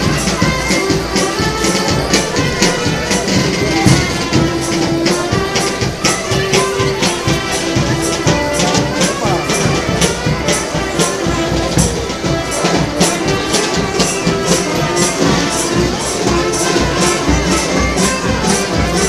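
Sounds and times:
folk dance music with jingling beat: 0.0s - 19.0s.

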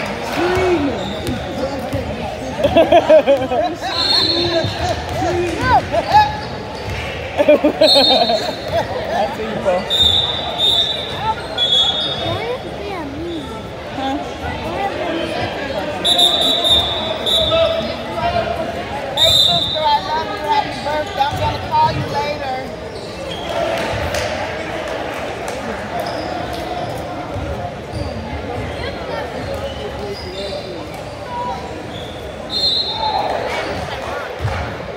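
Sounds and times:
basketballs bouncing on a court: 0.5s - 3.6s.

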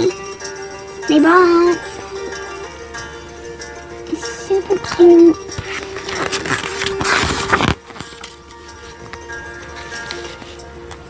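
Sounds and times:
soft background music: 0.0s - 11.0s
book page turning: 4.8s - 11.0s.

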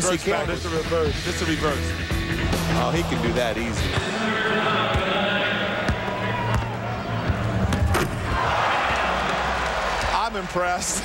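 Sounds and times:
crowd cheering: 2.7s - 11.0s.

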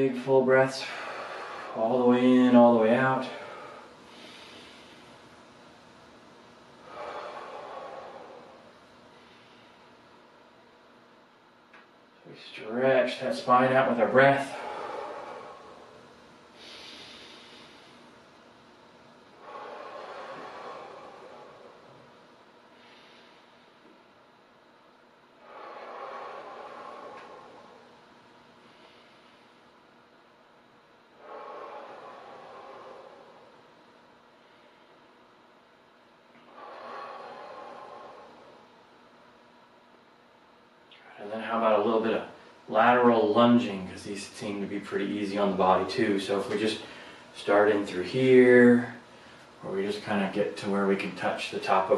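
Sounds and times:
man breathing deeply: 0.2s - 10.7s, 13.5s - 24.2s, 25.2s - 40.2s, 46.5s - 47.6s.

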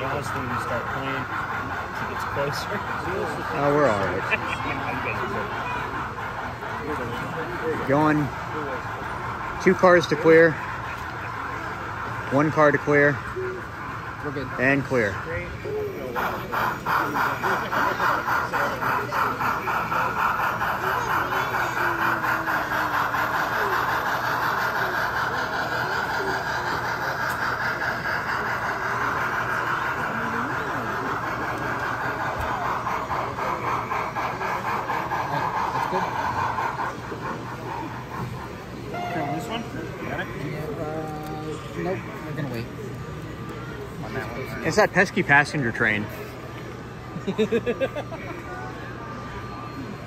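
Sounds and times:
toy train clicking whir: 0.0s - 48.0s
crowd chatter: 0.0s - 50.0s.

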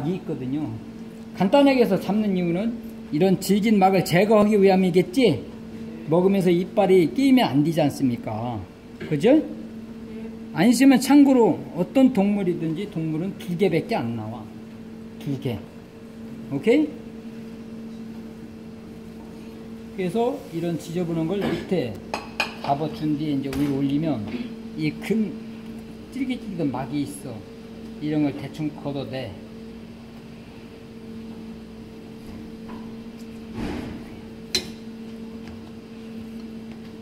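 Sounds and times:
steady machine hum: 0.0s - 37.0s.

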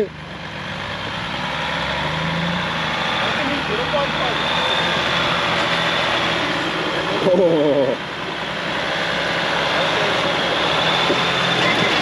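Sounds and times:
off-road vehicle engine running: 0.0s - 12.0s.

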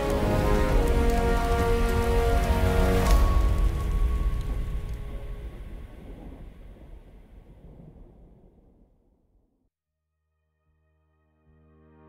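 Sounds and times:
deep rumble: 0.0s - 9.5s.

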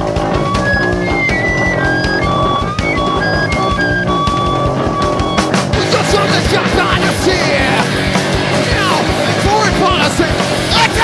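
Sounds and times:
electric guitar sustained notes: 0.0s - 11.0s
rapid drumming: 0.0s - 11.0s.

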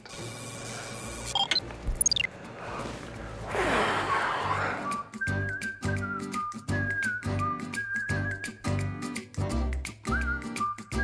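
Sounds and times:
short electronic beeps: 1.3s - 2.3s
beeps falling in pitch: 1.4s - 2.3s.

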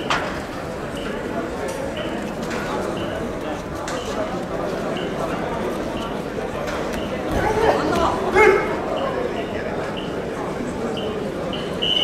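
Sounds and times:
chatter of voices in hall: 0.0s - 12.0s
loud shout: 7.3s - 8.8s.

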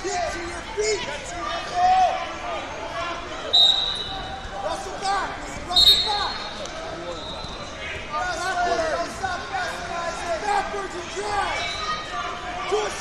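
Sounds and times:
referee's whistle blasts: 3.5s - 4.3s, 5.7s - 7.7s.

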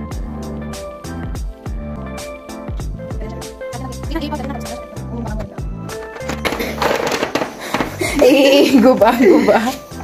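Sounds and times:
background music: 0.0s - 10.0s
chess pieces clattering: 6.0s - 8.0s.

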